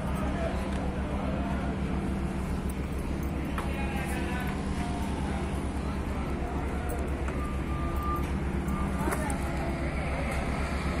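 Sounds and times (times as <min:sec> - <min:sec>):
diesel machinery engine rumbling: 0:00.0 - 0:11.0.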